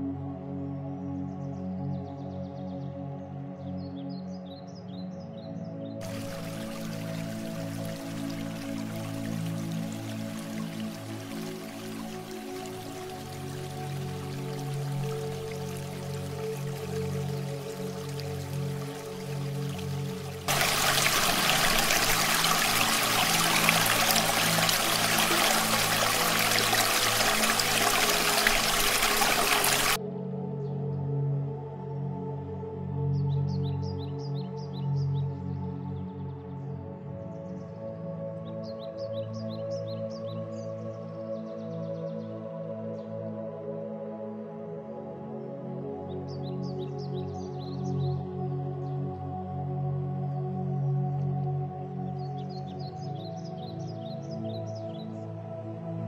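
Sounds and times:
background music: 0.0 - 56.0
birds chirping: 6.0 - 30.0
mountain stream rushing: 6.0 - 30.0.

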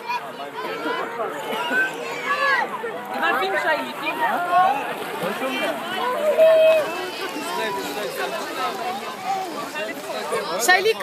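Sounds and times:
children and adults chattering: 0.0 - 11.0.

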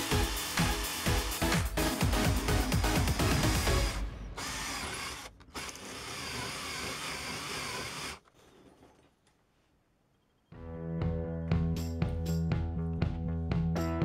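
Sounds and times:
electric drill boring steel: 0.0 - 1.6, 2.5 - 8.3
background music: 0.0 - 4.6, 10.6 - 14.0.

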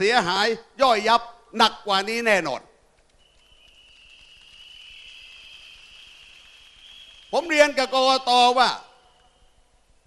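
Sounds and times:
many whistles blowing: 3.2 - 8.1.

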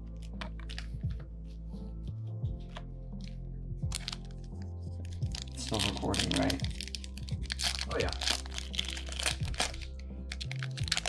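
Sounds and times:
foil wrapper crinkling: 3.9 - 11.0.

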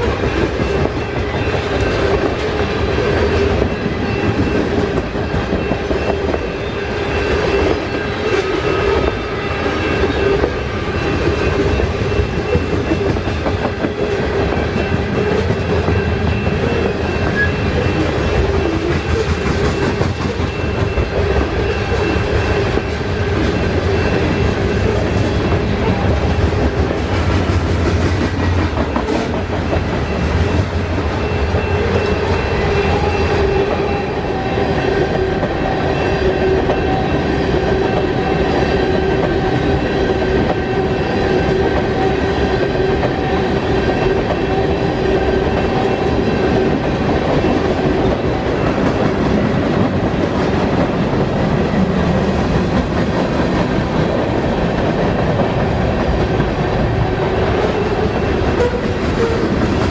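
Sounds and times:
freight train rolling past: 0.0 - 59.9.

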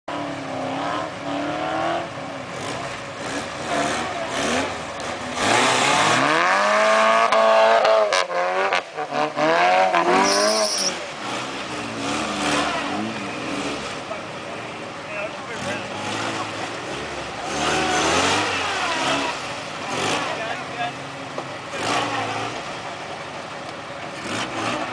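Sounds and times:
engine revving hard: 0.6 - 14.0, 15.5 - 20.6, 21.7 - 22.7, 24.2 - 24.9.

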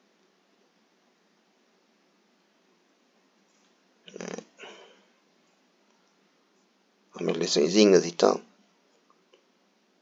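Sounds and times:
short vocal sounds: 4.1 - 5.0.

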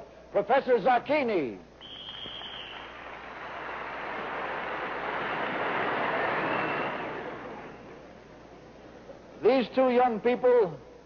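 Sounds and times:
audience applauding: 1.9 - 8.2.

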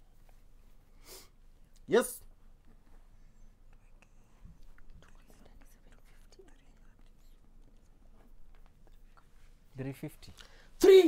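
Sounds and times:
people whispering: 3.4 - 8.0.

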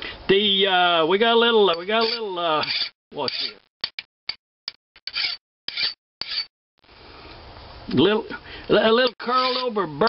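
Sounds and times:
file scraping on metal: 1.8 - 3.6, 5.0 - 6.5, 9.2 - 9.8.

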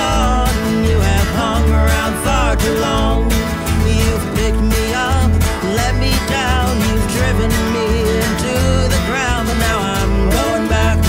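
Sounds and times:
acoustic guitars strummed: 0.0 - 11.0
man singing: 0.0 - 11.0
plucked upright bass: 0.0 - 11.0.

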